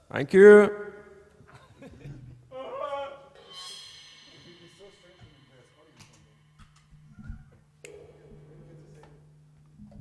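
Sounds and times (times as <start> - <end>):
amplifier hum: 3.2 - 10.0
high ringing tone: 3.4 - 9.5.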